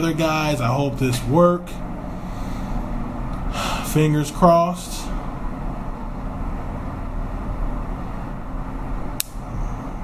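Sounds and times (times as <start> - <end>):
low background rumble: 0.0 - 10.0
sharp click: 9.2 - 9.4.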